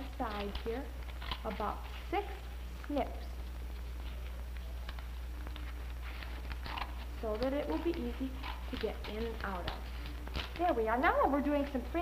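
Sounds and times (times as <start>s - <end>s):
scissors snipping paper: 0.0s - 2.1s, 3.9s - 11.0s
low electrical hum: 0.0s - 12.0s.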